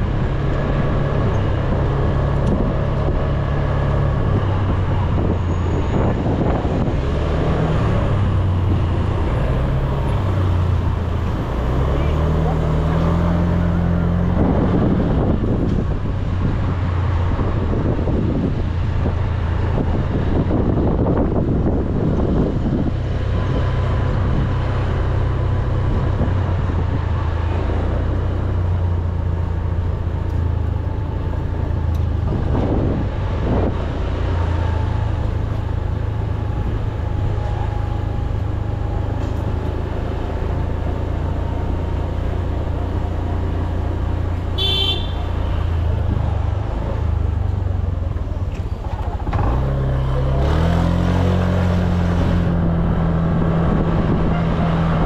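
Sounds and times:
wind and road noise: 0:00.0 - 0:55.0.

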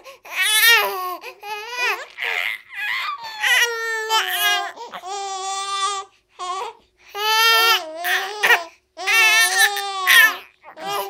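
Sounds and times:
baby crying: 0:00.0 - 0:11.0.

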